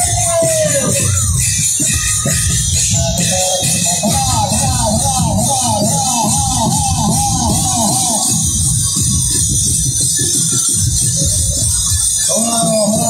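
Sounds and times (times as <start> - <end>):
dhol drums beating: 0.0 - 13.0.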